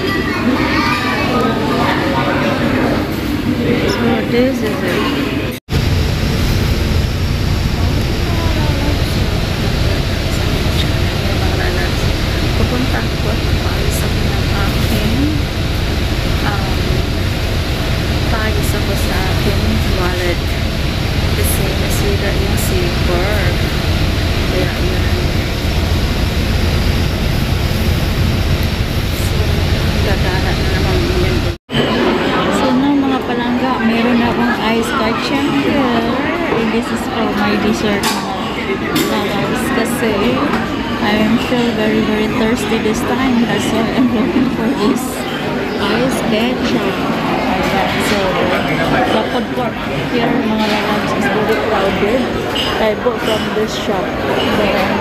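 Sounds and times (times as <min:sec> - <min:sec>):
faint voices: 0:00.0 - 0:55.0
bus rumble inside cabin: 0:05.7 - 0:31.7.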